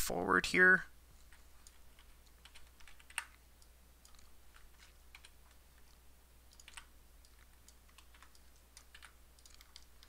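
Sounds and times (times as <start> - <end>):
faint low hum: 0.0 - 10.0
computer mouse and keyboard clicking: 1.2 - 10.0.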